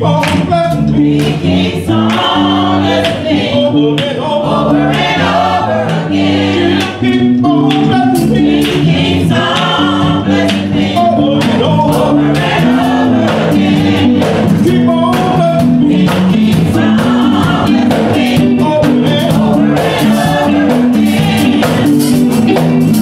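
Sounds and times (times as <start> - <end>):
gospel choir singing: 0.0 - 23.0
sustained instrumental chords: 0.0 - 23.0
drum beat: 0.1 - 23.0.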